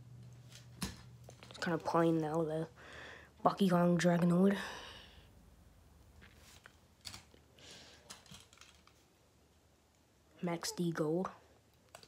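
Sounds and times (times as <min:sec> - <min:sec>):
soft rustle: 0:06.0 - 0:06.9
toy trucks clicking: 0:08.0 - 0:09.0.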